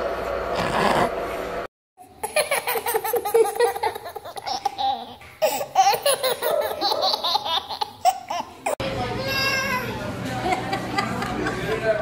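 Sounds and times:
baby laughing: 2.0s - 8.8s.

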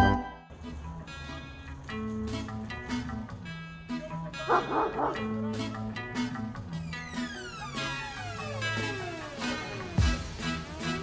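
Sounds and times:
acoustic guitar music: 0.0s - 11.0s
dog barking: 4.4s - 5.5s.

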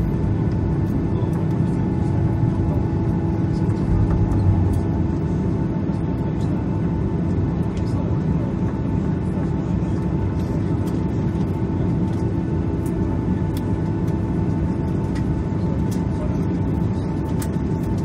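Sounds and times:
jet engines idling rumble: 0.0s - 18.0s.

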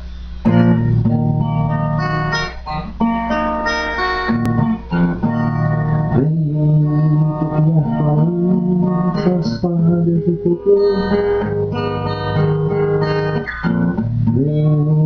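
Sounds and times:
acoustic guitar playing: 0.0s - 15.0s.

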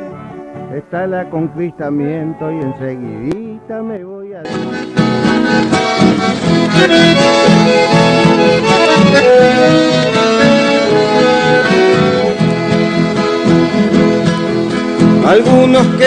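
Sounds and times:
accordion music: 0.0s - 16.0s
rhythmic accompaniment: 0.0s - 16.0s.

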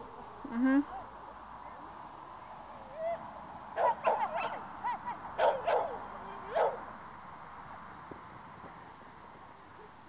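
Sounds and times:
dog barking: 3.8s - 6.8s.

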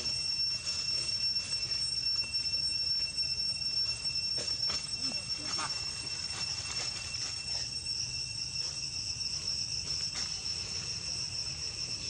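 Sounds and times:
cicadas droning: 0.0s - 12.0s.

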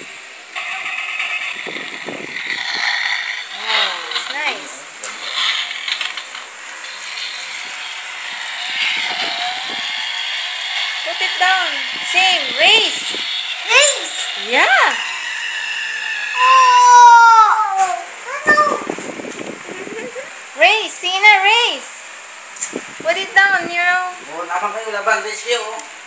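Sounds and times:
toy car engine sound effect: 0.6s - 18.7s.

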